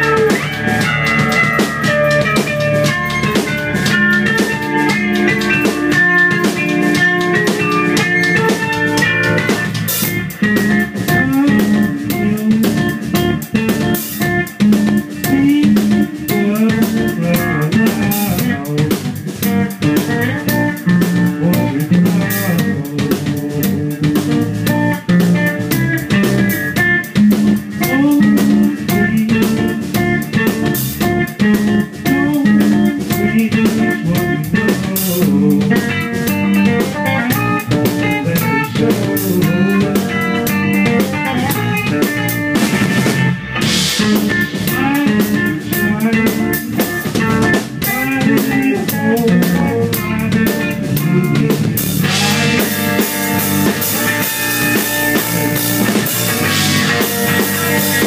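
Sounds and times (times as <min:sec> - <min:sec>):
bass guitar: 0:00.0 - 0:58.0
drum kit hits: 0:00.0 - 0:58.0
electric guitar: 0:00.0 - 0:58.0.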